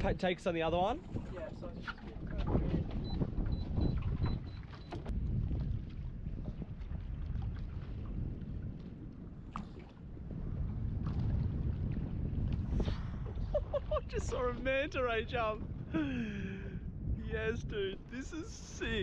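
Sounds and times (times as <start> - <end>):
water lapping against boat hull: 0.0 - 19.0
wind buffeting microphone: 0.0 - 19.0.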